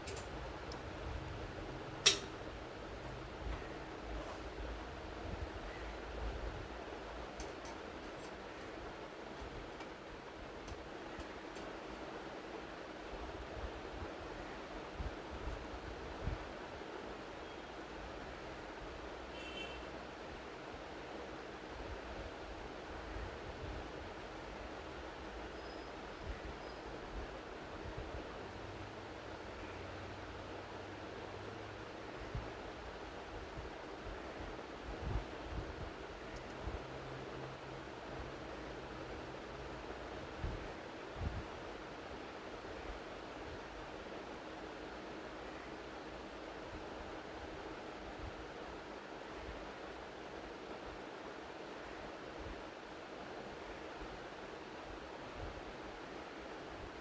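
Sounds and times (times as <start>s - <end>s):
microphone hiss: 0.0s - 57.0s.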